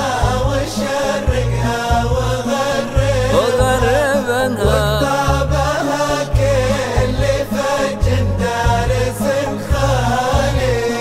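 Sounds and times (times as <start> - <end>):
male voices chanting: 3.2 - 5.5.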